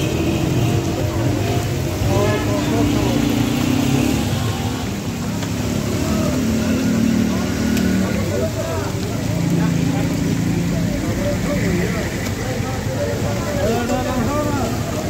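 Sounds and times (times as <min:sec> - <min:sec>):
kebabs sizzling in fat: 0:00.0 - 0:15.0
people talking: 0:00.0 - 0:15.0.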